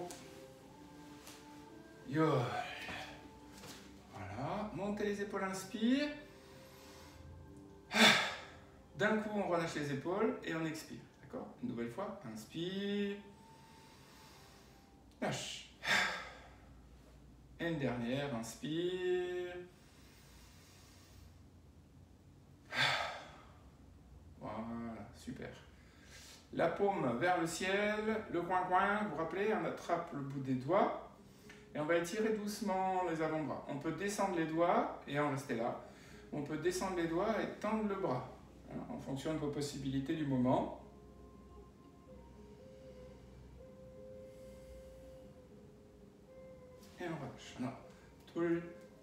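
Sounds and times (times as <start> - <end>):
soft sustained background music: 0.0 - 49.0.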